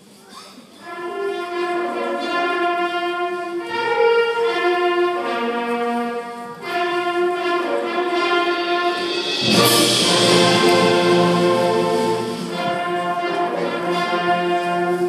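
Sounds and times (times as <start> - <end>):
concert band playing soft chords: 1.0 - 15.0.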